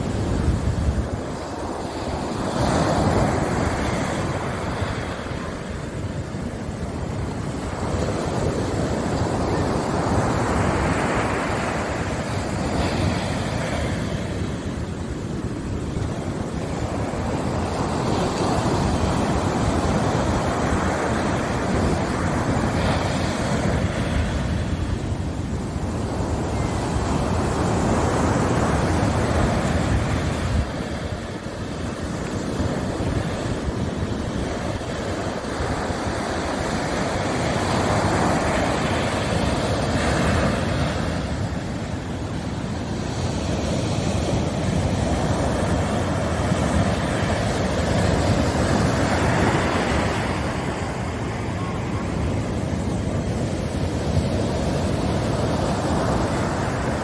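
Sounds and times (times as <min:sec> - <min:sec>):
surf breaking on sandy beach: 0:00.0 - 0:57.0.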